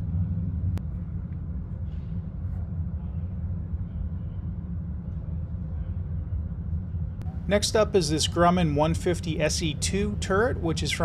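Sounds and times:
low indoor rumble: 0:00.0 - 0:11.0.

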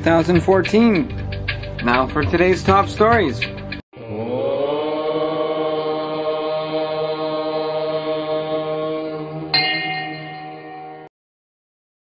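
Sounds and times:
chanted vocal note: 0:04.0 - 0:10.8.

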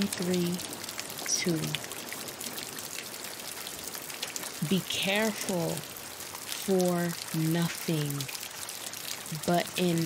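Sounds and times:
small water drips: 0:00.0 - 0:10.0.

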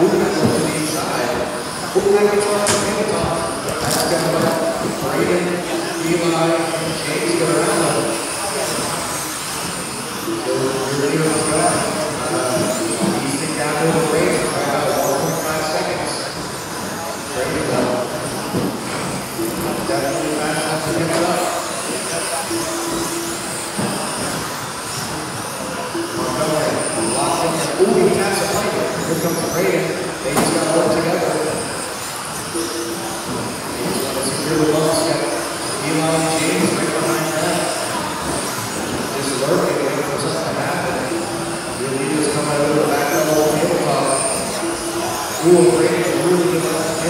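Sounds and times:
electric rc cars racing: 0:00.0 - 0:47.0
held tone: 0:19.3 - 0:24.1, 0:32.4 - 0:38.1, 0:42.6 - 0:47.0.

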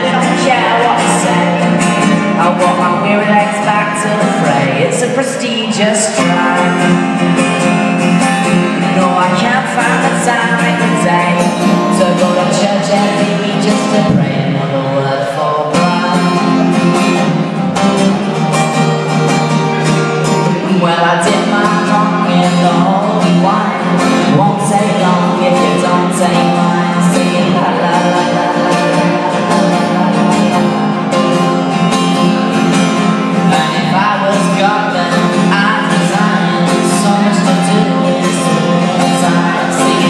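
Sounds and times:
acoustic blues guitar: 0:00.0 - 0:40.0
person singing: 0:00.0 - 0:40.0.

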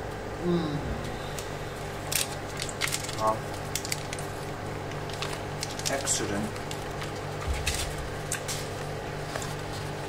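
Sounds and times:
steady low hum: 0:00.0 - 0:10.0
person saying oh: 0:00.4 - 0:01.3.

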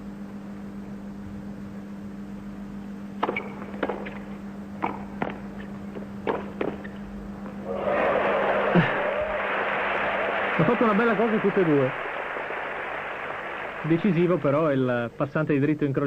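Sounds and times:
steady low hum: 0:00.0 - 0:16.0
ball bounces: 0:03.2 - 0:06.9
crowd applause and cheering: 0:07.6 - 0:14.8.

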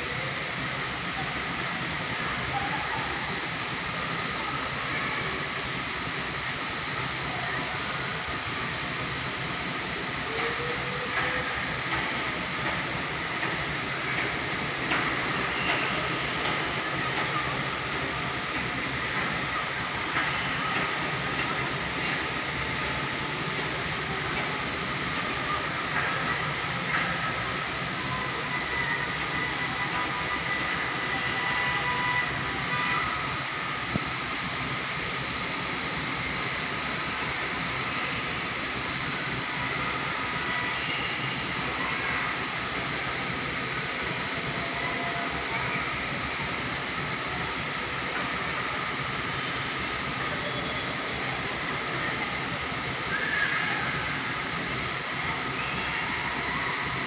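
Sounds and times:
outdoor ambient noise: 0:00.0 - 0:57.0.

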